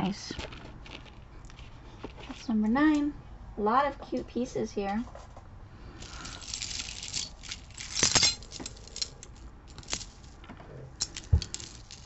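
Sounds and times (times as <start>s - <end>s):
metal chains jingling: 6.0s - 10.3s, 11.0s - 12.0s.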